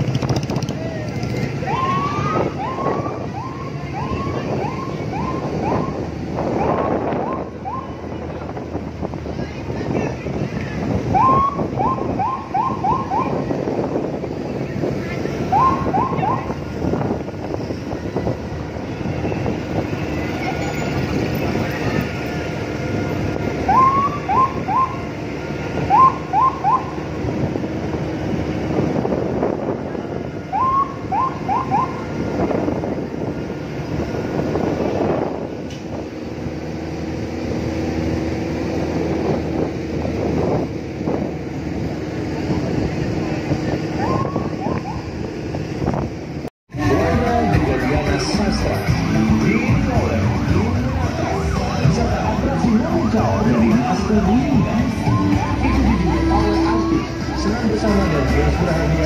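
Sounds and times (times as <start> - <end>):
wind on microphone: 0.0 - 46.5
vehicle road noise: 0.0 - 59.0.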